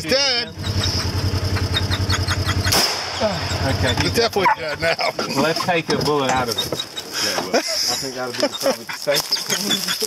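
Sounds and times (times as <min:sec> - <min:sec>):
utility vehicle engine idling: 0:00.0 - 0:09.8.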